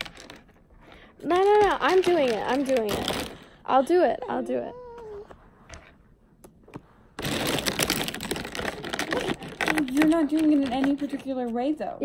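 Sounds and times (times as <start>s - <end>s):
plastic pens clattering: 0.0s - 3.4s, 7.2s - 11.8s.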